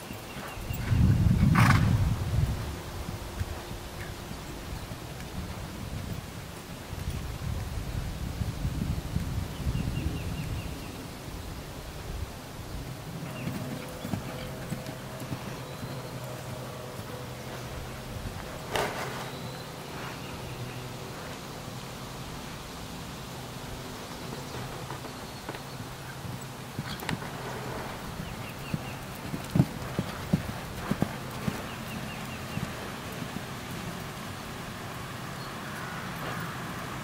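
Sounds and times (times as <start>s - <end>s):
hoofbeats on sand: 0.1s - 2.2s, 13.1s - 21.6s, 24.2s - 34.2s.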